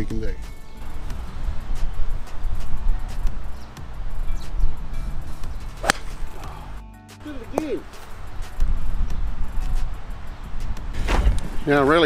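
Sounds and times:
golf club striking ball: 5.8s - 6.6s.

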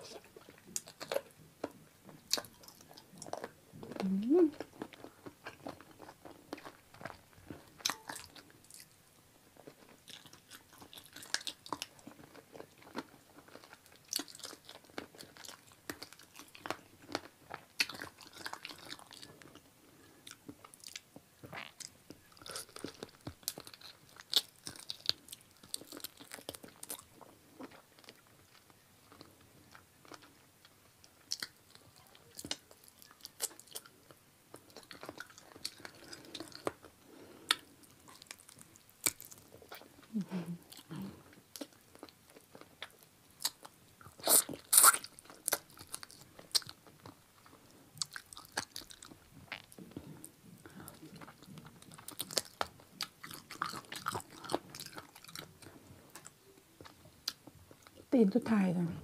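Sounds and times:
chewing crunches and crackles: 0.0s - 58.1s.

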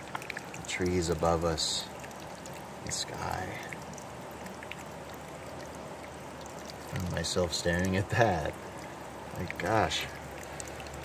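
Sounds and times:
water trickling over rock: 0.0s - 11.0s.

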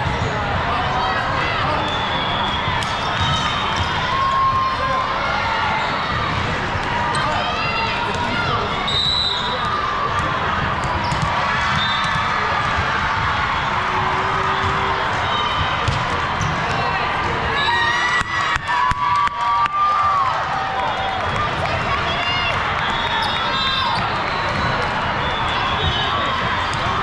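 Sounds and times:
sneakers squeaking on court floor: 10.8s - 12.3s.

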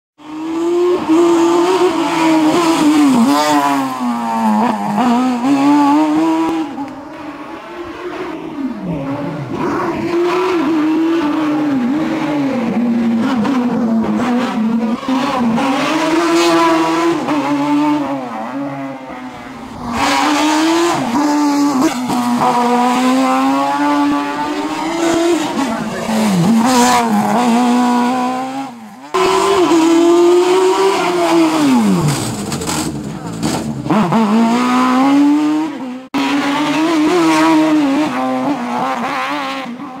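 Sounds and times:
racing car engine revving: 0.2s - 40.0s.

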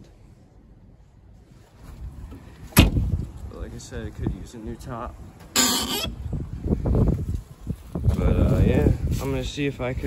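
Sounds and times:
shuffling movement: 0.2s - 4.4s
car door shutting: 2.7s - 3.0s.

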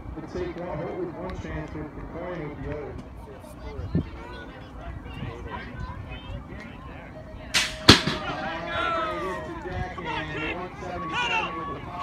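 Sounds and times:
spectators shouting and cheering: 7.6s - 12.0s.

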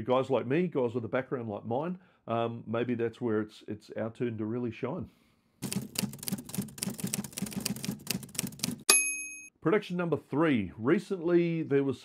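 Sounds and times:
typewriter key clacks: 5.6s - 8.8s
typewriter bell ding: 8.6s - 9.5s.

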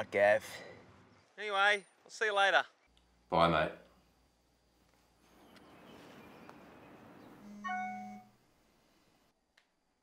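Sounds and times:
background hiss: 0.0s - 10.0s
notification chime: 7.4s - 8.3s
phone vibration buzz: 7.4s - 8.4s.

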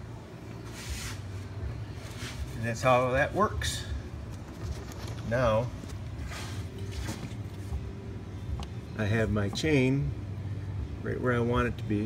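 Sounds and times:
low background hum: 0.0s - 12.0s.

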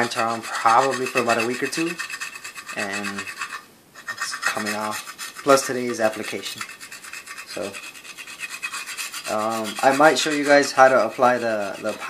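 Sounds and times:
metal scraper rasping on wood: 0.0s - 12.0s.

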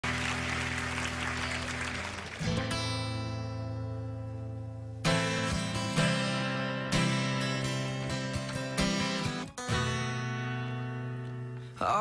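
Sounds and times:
applause: 0.0s - 3.1s
acoustic guitar chord: 0.0s - 12.0s.

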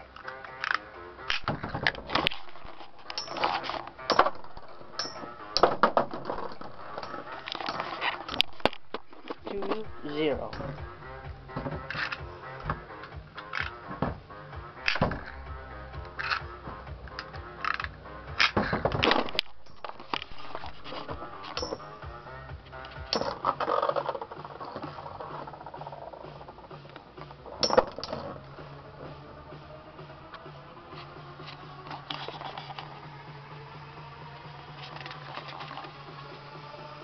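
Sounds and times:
background music: 0.0s - 37.0s
spinning tops clashing metallically: 2.4s - 5.6s, 19.2s - 22.2s.

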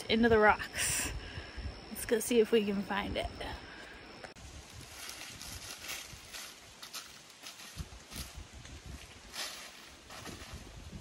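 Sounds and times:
footsteps through dry leaves: 4.4s - 11.0s.

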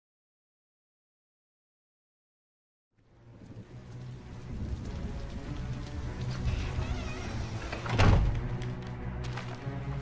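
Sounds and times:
hissing rain-like noise: 3.0s - 10.0s
low droning film score: 3.0s - 10.0s.

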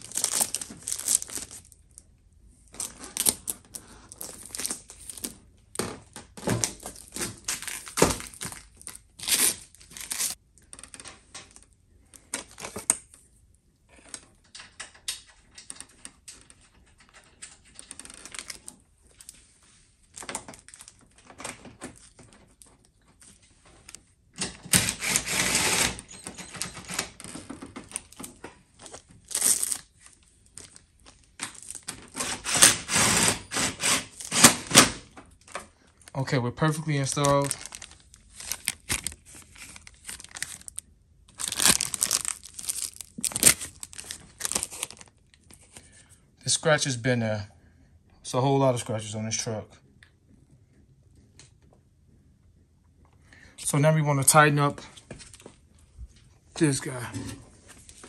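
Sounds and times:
plastic wrap crinkling: 0.0s - 5.5s, 6.6s - 11.6s, 17.8s - 18.8s, 20.0s - 21.3s, 26.9s - 32.9s, 35.4s - 45.9s.

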